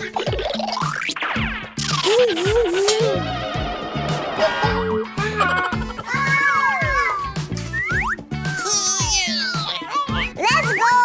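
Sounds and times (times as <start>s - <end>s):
playful children's music: 0.0s - 11.0s.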